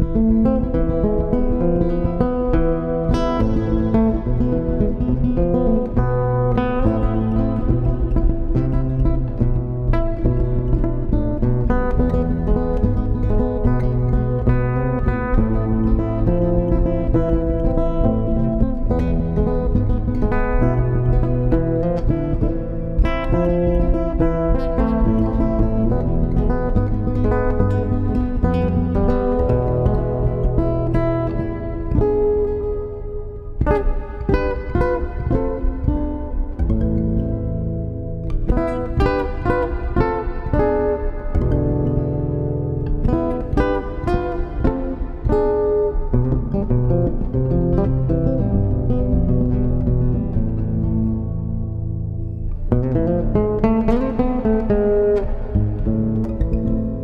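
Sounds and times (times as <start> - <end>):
guitar instrumental music: 0.0 - 57.0.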